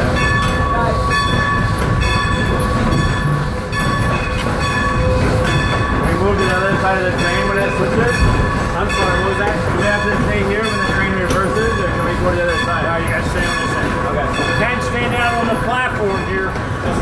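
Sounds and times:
people talking: 0.0s - 1.2s, 6.0s - 17.0s
train wheels rumbling on rail: 0.0s - 17.0s.

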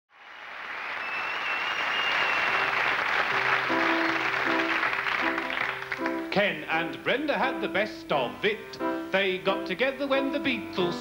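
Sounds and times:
audience applause: 0.1s - 6.4s
grand piano chords: 2.7s - 11.0s.

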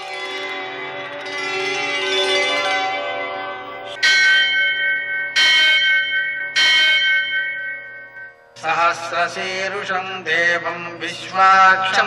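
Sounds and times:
large temple bell ringing: 0.0s - 12.0s.

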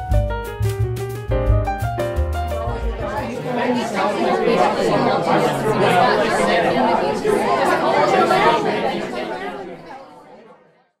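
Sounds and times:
chatter of many voices: 2.4s - 11.0s.

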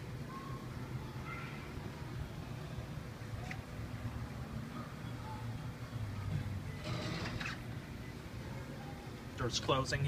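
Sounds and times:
higher mechanical noise burst: 6.7s - 8.1s.

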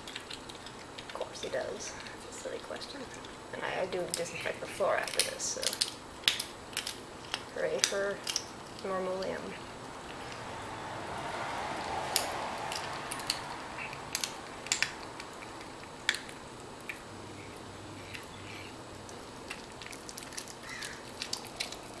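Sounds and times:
cat crunching bones: 0.0s - 1.2s, 5.0s - 8.8s, 9.6s - 10.5s, 11.5s - 22.0s
cat growling: 17.1s - 18.8s.

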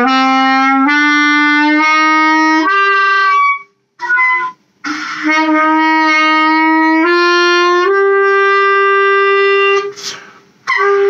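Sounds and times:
clarinet notes: 0.0s - 11.0s.

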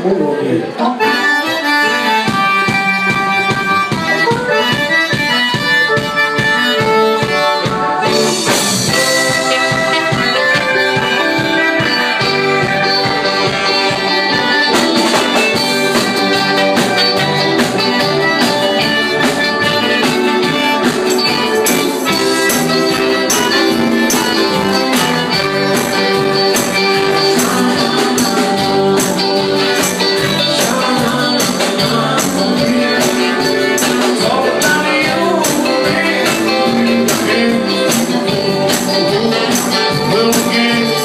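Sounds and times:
accordion chords: 0.0s - 41.0s
bass: 0.0s - 41.0s
electric guitar: 0.0s - 41.0s
drums beat: 2.2s - 41.0s.

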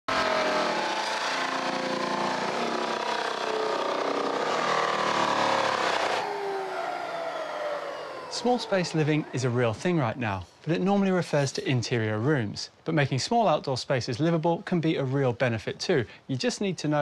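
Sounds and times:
floor sander grinding: 0.1s - 9.9s.

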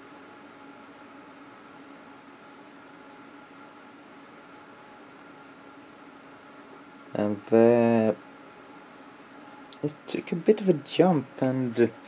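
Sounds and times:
faint steady hums: 0.0s - 12.0s.

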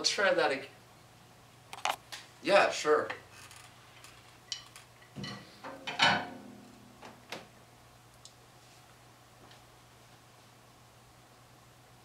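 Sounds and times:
faint low hum: 2.4s - 12.0s.

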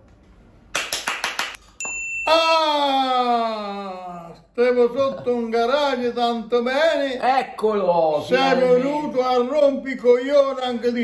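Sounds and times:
bright ding: 1.6s - 2.7s
man shouting: 2.3s - 4.4s, 8.2s - 9.2s.

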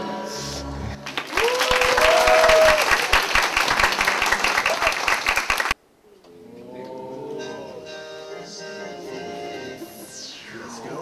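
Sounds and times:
audience applauding: 1.0s - 5.8s
people cheering: 1.1s - 5.8s
quiet music: 6.4s - 11.0s.

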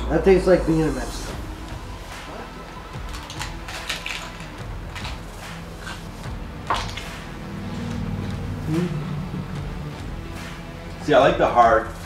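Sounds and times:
taco shells crunching: 2.8s - 7.1s.

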